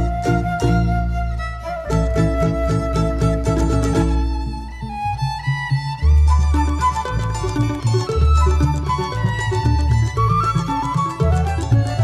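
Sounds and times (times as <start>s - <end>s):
violin melody: 0.0s - 12.0s
rhythmic strumming: 1.9s - 12.0s.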